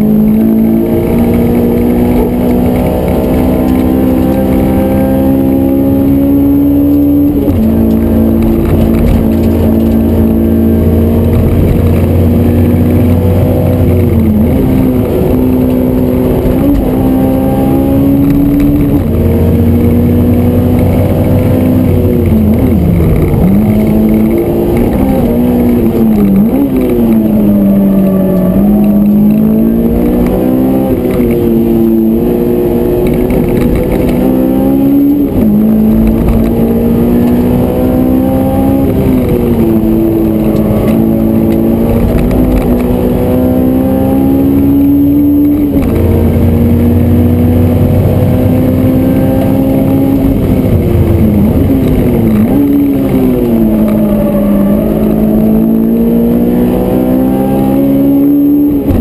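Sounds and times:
car engine accelerating from inside: 0.0 - 59.0.

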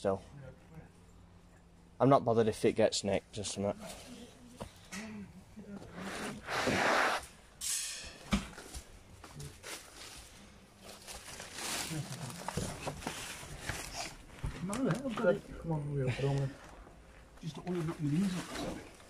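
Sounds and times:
rustling through undergrowth: 8.6 - 15.2.

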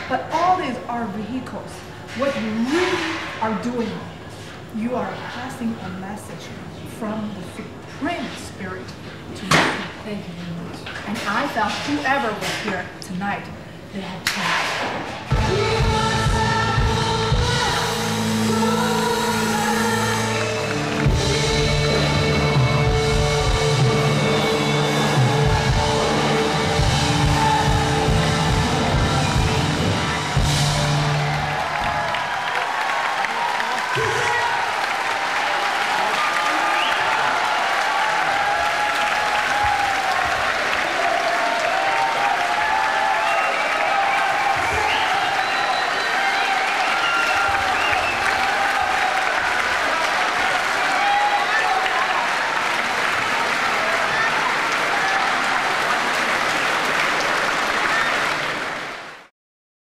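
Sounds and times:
crowd voices: 13.5 - 59.2
band playing last notes: 17.4 - 31.7
audience applauding: 19.0 - 59.3.

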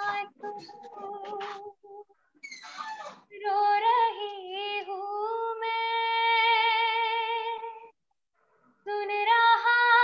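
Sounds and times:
woman singing unaccompanied: 0.0 - 2.2, 3.3 - 8.0, 8.8 - 10.0.

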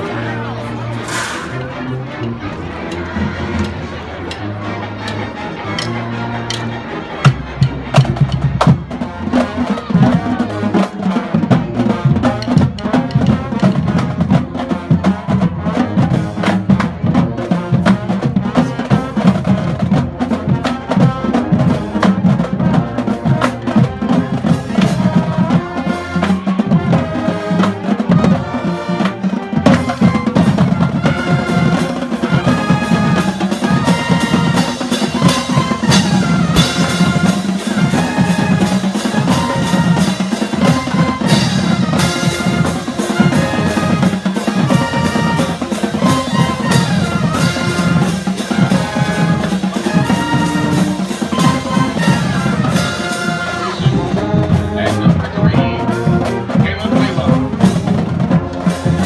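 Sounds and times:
brass instruments playing: 0.0 - 59.0
marching band drumline: 0.2 - 59.0.

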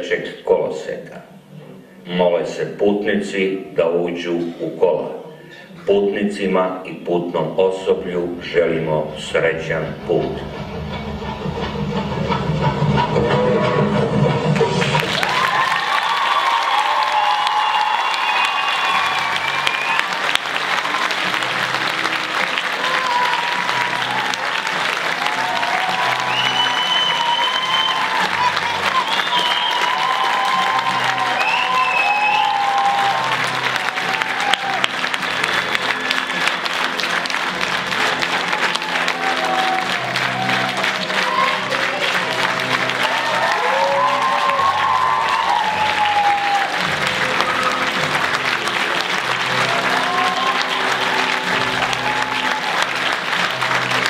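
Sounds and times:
audience applause: 10.8 - 54.0.

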